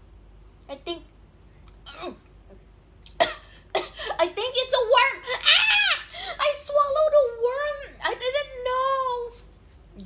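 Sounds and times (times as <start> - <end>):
child squealing: 5.2 - 6.1.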